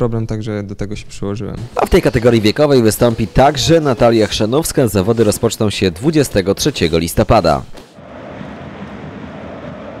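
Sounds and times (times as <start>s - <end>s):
steady rushing rumble: 8.0s - 10.0s.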